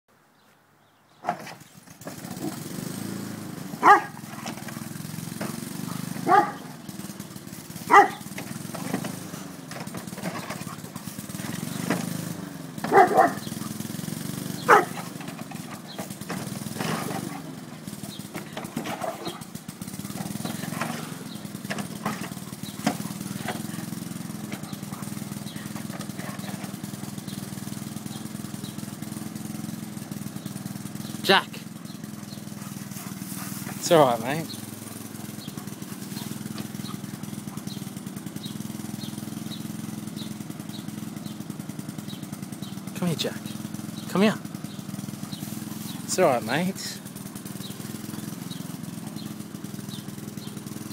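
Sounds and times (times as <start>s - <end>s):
lawn mower engine humming: 0.2s - 50.9s
dog barking: 3.8s - 4.5s, 5.8s - 6.7s, 7.8s - 8.3s, 12.8s - 13.8s, 14.6s - 15.2s.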